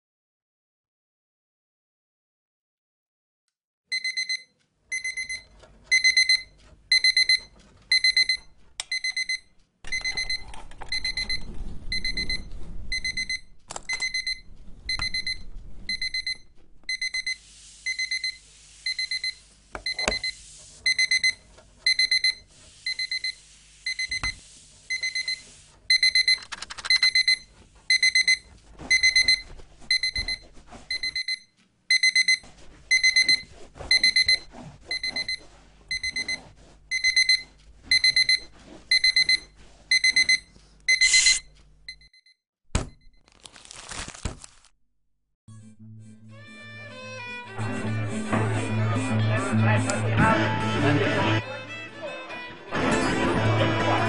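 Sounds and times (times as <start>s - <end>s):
alarm clock beeping: 3.9s - 42.4s.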